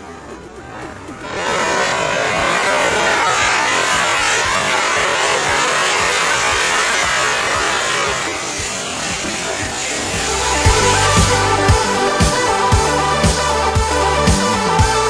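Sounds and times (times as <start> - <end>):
firecracker hissing and crackling: 0.4 - 12.9.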